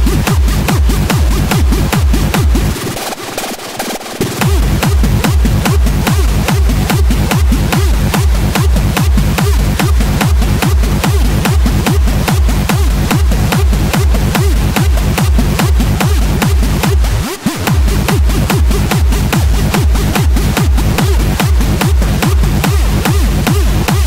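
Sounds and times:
heavy kick drum: 0.0 - 3.0, 4.2 - 24.0
fast electronic dance music: 0.0 - 24.0.

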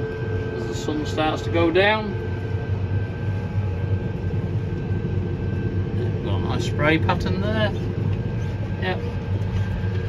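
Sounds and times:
tractor engine drone: 0.0 - 10.0.

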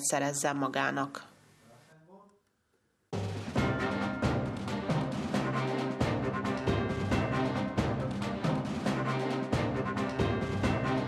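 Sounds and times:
theme music with punchy beat: 3.2 - 11.0.

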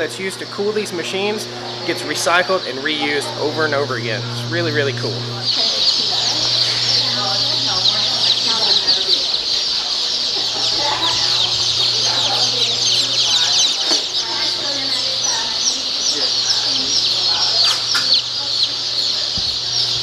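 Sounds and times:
chicks peeping: 0.0 - 20.0
steady low hum: 0.0 - 20.0.

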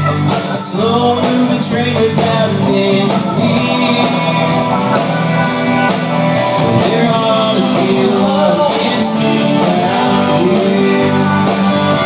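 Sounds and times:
country-rock band playing: 0.0 - 12.0.

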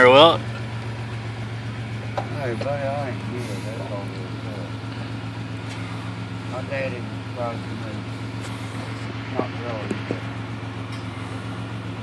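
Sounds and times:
car running inside cabin: 0.0 - 12.0.

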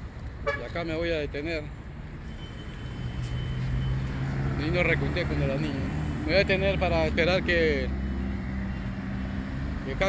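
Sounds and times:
low engine hum of traffic: 0.0 - 10.0
cars driving past: 1.8 - 10.0.

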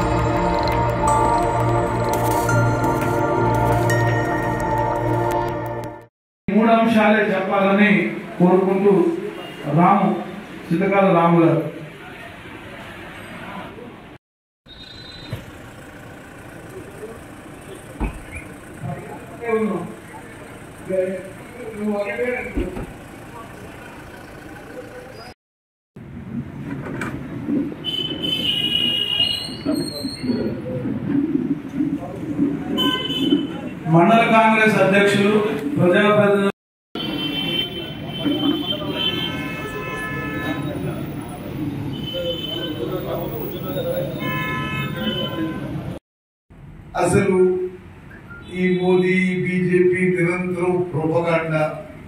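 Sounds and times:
car engine idling: 15.5 - 25.2
men talking: 18.8 - 22.8, 33.8 - 36.5
vehicle horn: 27.8 - 29.4, 32.8 - 33.6, 37.0 - 41.0, 41.9 - 45.9.

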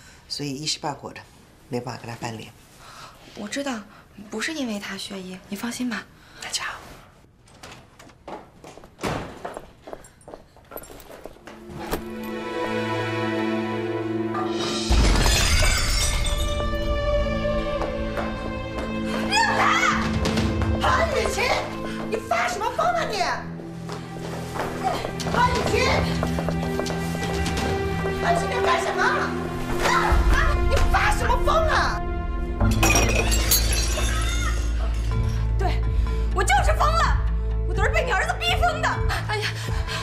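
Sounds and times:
background music: 10.8 - 40.0
objects smashing: 14.9 - 16.8
glass shattering: 14.9 - 16.9, 32.7 - 35.1.

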